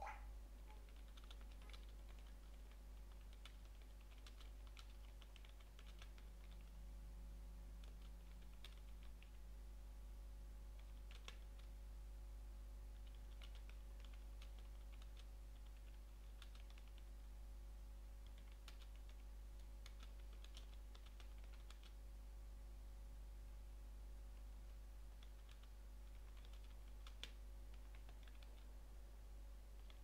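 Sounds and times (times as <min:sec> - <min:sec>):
steady low hum: 0:00.0 - 0:30.0
computer keyboard typing: 0:00.8 - 0:06.7, 0:07.8 - 0:09.4, 0:10.8 - 0:11.8, 0:13.0 - 0:17.1, 0:18.2 - 0:22.0, 0:25.1 - 0:28.7, 0:29.8 - 0:30.0.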